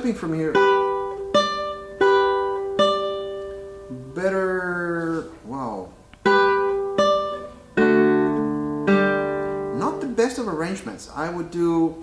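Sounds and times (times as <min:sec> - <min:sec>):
classical guitar notes and chords: 0:00.0 - 0:10.9
person speaking brief word: 0:04.0 - 0:05.9.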